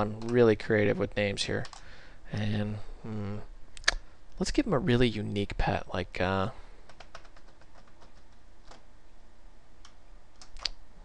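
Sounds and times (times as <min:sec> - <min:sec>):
faint low hum: 0:00.0 - 0:11.0
computer keyboard keystrokes: 0:01.6 - 0:01.8, 0:06.9 - 0:08.8, 0:09.8 - 0:10.8.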